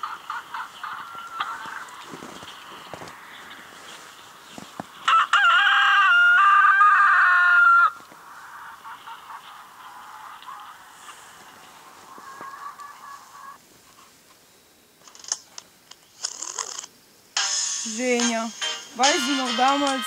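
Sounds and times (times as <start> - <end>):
quiet calling: 0.0 - 5.1, 6.6 - 14.0
rooster crowing: 0.6 - 2.4, 5.0 - 13.6.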